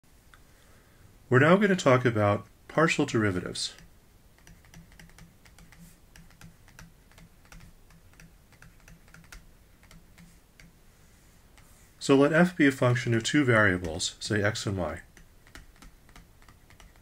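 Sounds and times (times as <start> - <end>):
stylus tapping on pen tablet: 3.8 - 10.8, 15.0 - 17.0.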